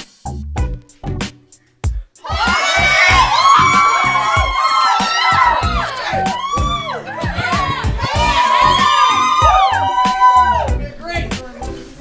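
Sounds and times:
background music with bass beat: 0.0 - 12.0
young people whooping and cheering: 2.2 - 10.8.

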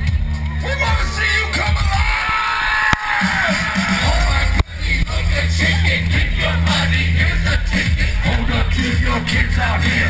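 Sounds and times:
live concert music with heavy bass: 0.0 - 10.0.

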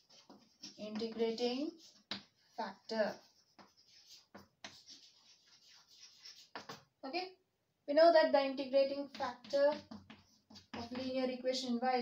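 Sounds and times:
chalk scratching on blackboard: 0.0 - 6.9, 9.1 - 11.2.

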